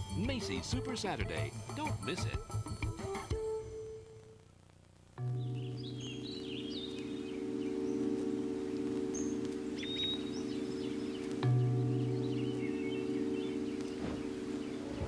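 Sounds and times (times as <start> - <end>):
birds chirping: 5.2 - 15.0
low musical drone: 5.2 - 15.0.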